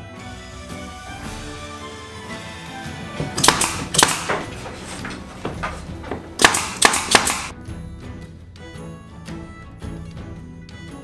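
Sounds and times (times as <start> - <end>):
background music: 0.0 - 11.0
loud bangs on plywood: 3.2 - 7.5.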